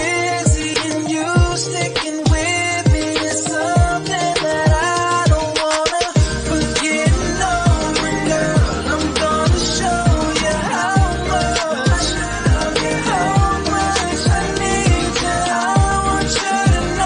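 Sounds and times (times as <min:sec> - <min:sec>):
pop music with sliding bass: 0:00.0 - 0:17.0.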